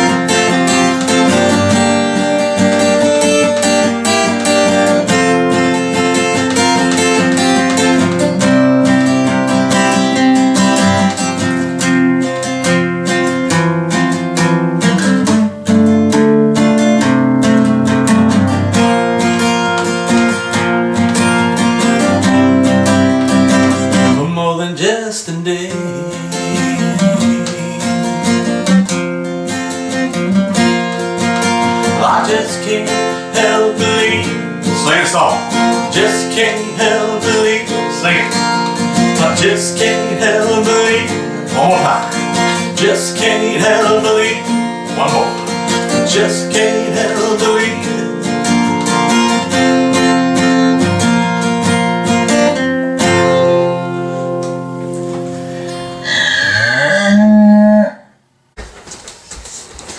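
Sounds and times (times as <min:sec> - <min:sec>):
acoustic guitar strummed and picked: 0:00.0 - 0:57.8.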